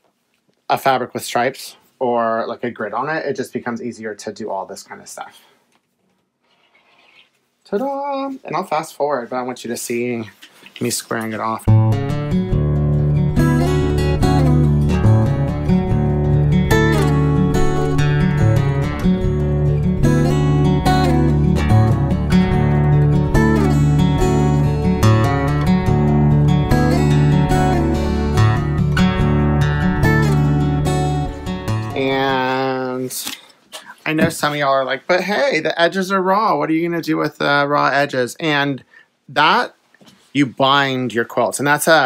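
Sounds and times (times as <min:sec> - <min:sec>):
guitar-led music with bass line: 0:11.6 - 0:32.7.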